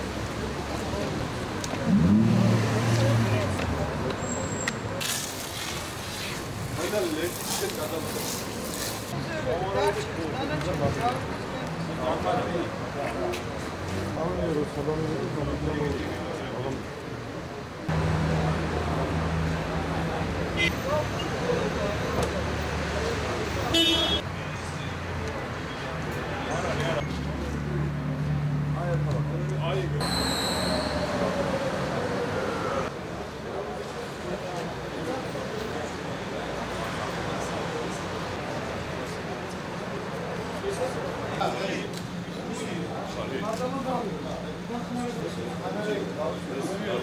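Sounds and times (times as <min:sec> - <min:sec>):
street traffic noise: 0:00.0 - 0:47.0
car horn beep: 0:23.7 - 0:24.2.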